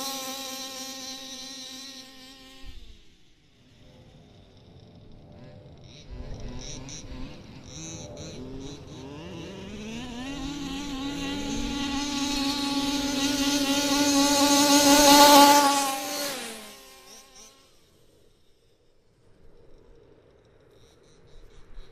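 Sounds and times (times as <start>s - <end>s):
small two-stroke engine revving: 0.0s - 18.6s.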